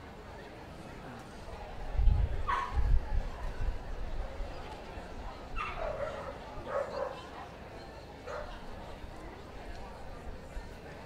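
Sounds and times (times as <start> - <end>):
dog barking: 2.5 - 2.8, 5.6 - 7.3, 8.3 - 8.6.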